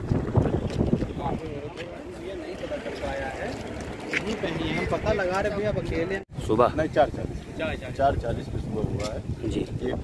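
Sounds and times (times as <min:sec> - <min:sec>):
wind buffeting microphone: 0:00.0 - 0:02.1, 0:02.8 - 0:10.0.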